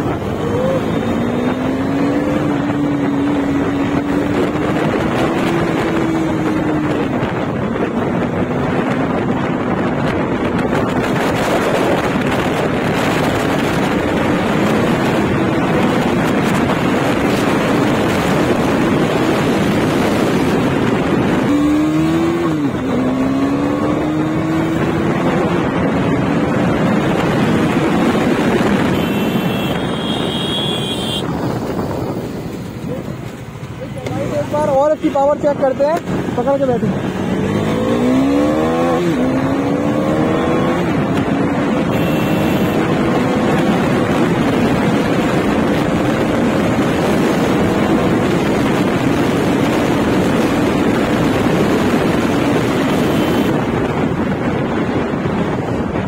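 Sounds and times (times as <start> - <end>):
motorcycle engine revving: 0.0 - 55.4
wind noise on microphone: 0.0 - 56.0.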